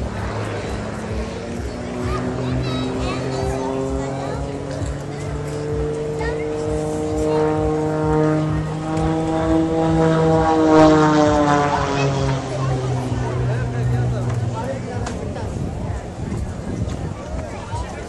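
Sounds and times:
propeller plane flying overhead: 0.0 - 18.0.

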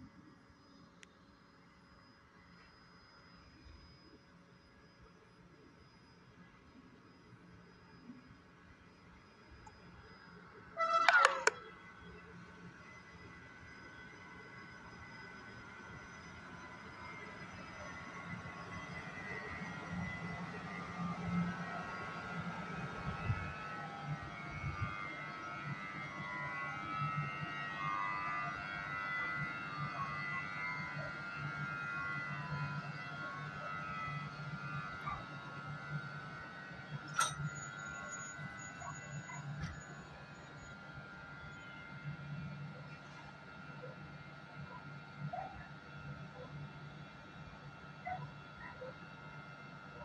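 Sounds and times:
electric locomotive whine: 0.0 - 50.0.

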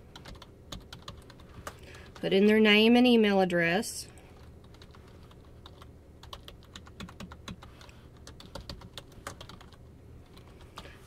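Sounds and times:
computer keyboard typing: 0.1 - 2.3, 4.4 - 10.9.

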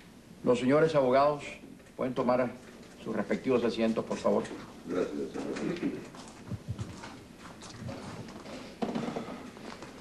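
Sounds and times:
dull footsteps: 6.1 - 8.6.

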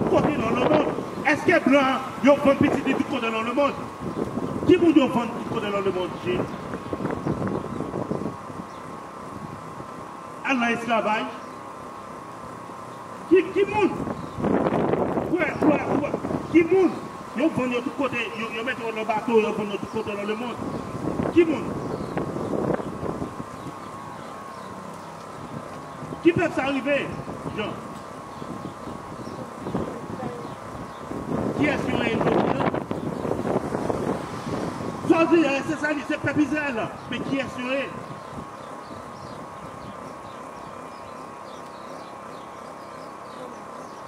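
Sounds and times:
wind noise on microphone: 0.0 - 10.0, 13.7 - 17.7, 19.2 - 41.5
buzzing tone wavering in pitch: 0.0 - 44.0
faint steady whine: 0.0 - 44.0
outdoor traffic: 0.0 - 44.0.

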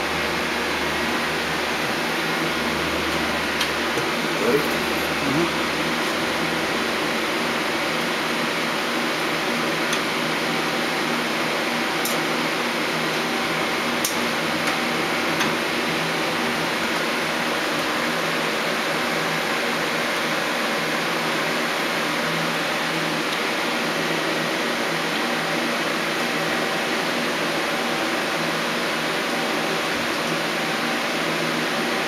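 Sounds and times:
machine hum: 0.0 - 8.0.

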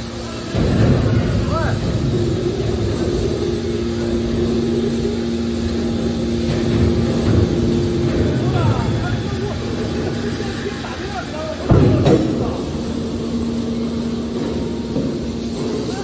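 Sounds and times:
hydraulic baler hum: 0.0 - 16.0.

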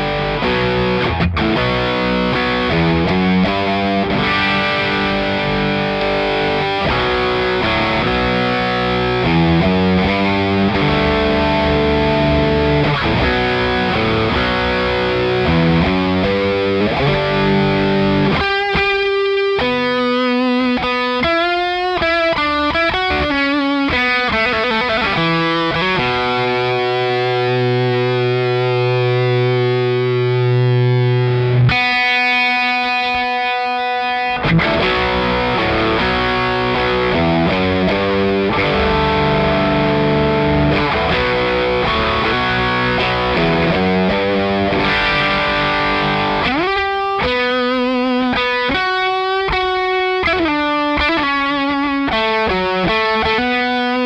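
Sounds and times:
overdriven electric guitar: 0.0 - 54.0.

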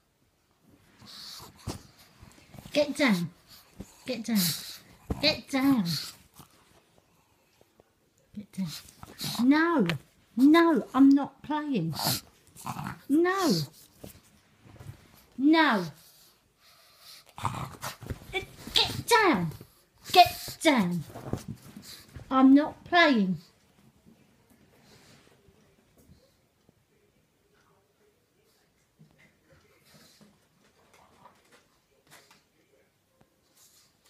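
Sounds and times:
dog breathing noisily: 0.9 - 7.5, 11.8 - 14.0
dog making rough noisy sounds: 11.9 - 13.8.

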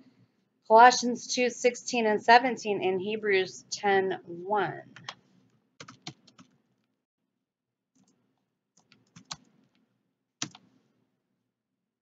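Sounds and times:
typing on computer keyboard: 5.8 - 6.6, 8.8 - 9.8, 10.4 - 10.7.

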